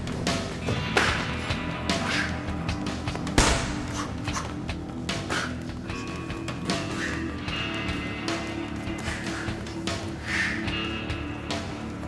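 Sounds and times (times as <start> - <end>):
background music: 0.0 - 12.0
boxing gloves smacking punch mitts: 3.4 - 4.7.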